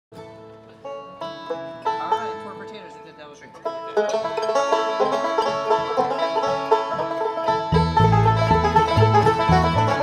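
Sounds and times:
banjo picking: 0:00.2 - 0:10.0
bluegrass band playing: 0:00.2 - 0:10.0.

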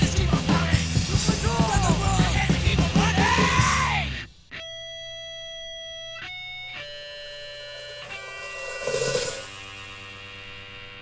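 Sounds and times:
electric guitar chord ringing: 0:04.6 - 0:11.0.

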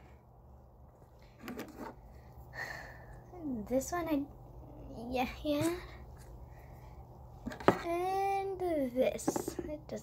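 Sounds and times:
faint room tone: 0:00.0 - 0:10.0.

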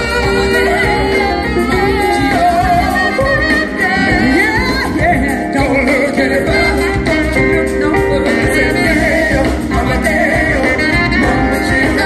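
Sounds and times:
bass guitar: 0:00.0 - 0:12.0
drums: 0:00.0 - 0:12.0
keyboards: 0:00.0 - 0:12.0
man singing: 0:00.0 - 0:12.0
woman singing: 0:00.0 - 0:12.0.

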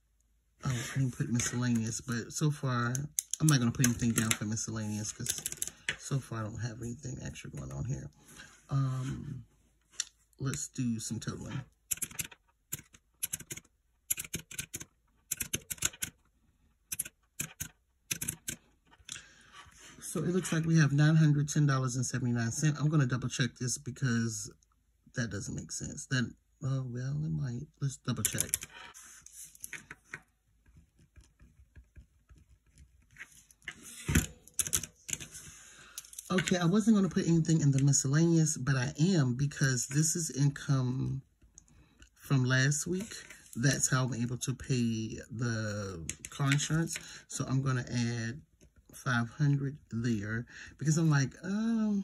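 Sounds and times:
calculator keys clicking: 0:11.9 - 0:16.2, 0:16.9 - 0:18.6.

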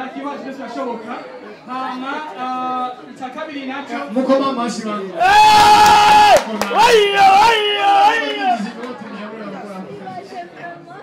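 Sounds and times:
crowd chatter in large room: 0:00.0 - 0:11.0.

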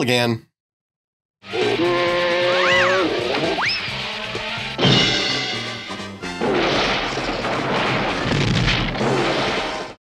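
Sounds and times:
cartoon rumbling crash: 0:06.3 - 0:10.0.

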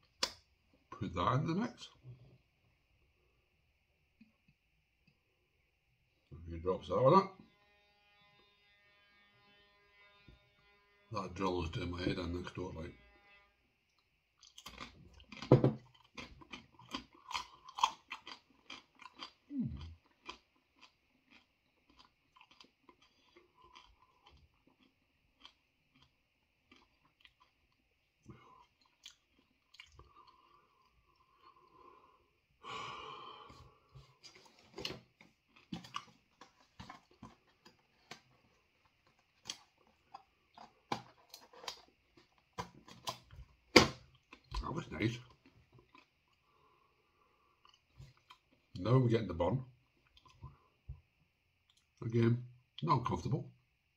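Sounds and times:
chip crunching: 0:14.4 - 0:27.8.

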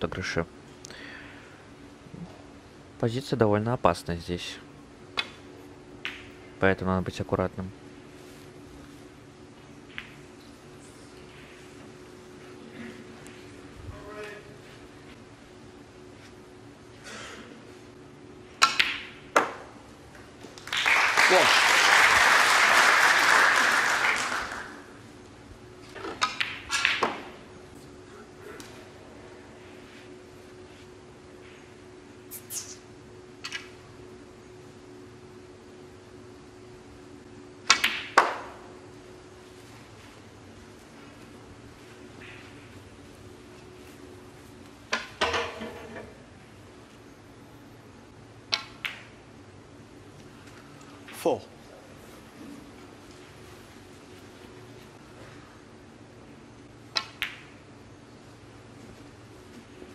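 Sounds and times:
snooker balls clicking: 0:06.0 - 0:06.4, 0:09.8 - 0:10.6, 0:48.5 - 0:49.2, 0:56.9 - 0:57.6
audience applause: 0:20.6 - 0:24.9.

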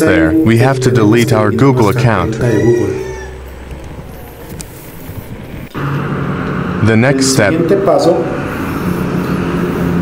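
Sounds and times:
low hum: 0:00.0 - 0:10.0
road noise: 0:00.0 - 0:10.0.

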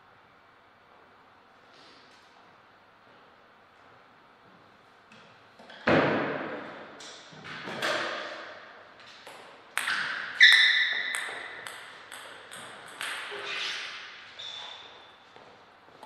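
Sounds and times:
table tennis ball pinging: 0:09.2 - 0:13.9.

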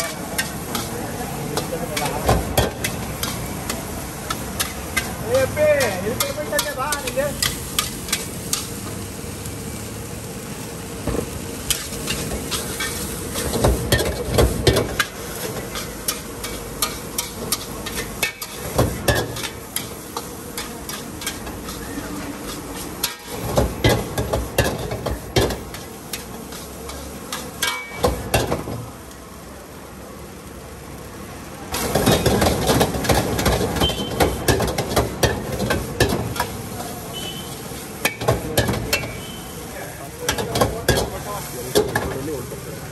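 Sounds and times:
metal utensils clanking on a wok: 0:00.0 - 0:08.9, 0:11.2 - 0:28.8, 0:31.7 - 0:42.5
food sizzling: 0:00.0 - 0:42.9.

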